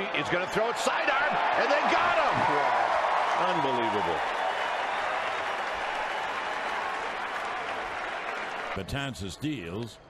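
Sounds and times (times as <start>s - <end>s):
crowd cheering and applauding: 0.0s - 8.8s.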